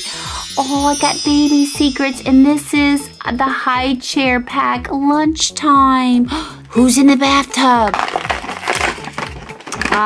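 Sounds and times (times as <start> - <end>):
background music with steady beat: 0.0 - 10.0
plastic packaging crinkling: 7.6 - 10.0.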